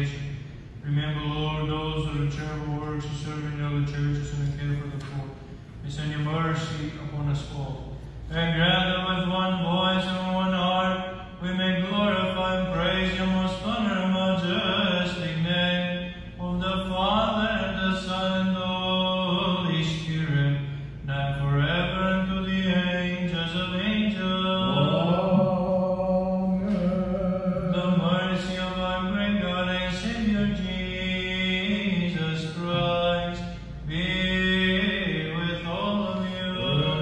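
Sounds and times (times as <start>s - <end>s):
man chanting a slow hymn: 0.0s - 37.0s.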